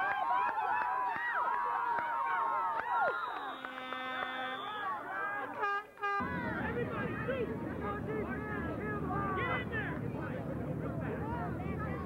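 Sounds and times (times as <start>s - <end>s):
spectators shouting and cheering: 0.0s - 12.0s
crowd chatter: 3.2s - 12.0s
horn blast: 3.4s - 9.8s.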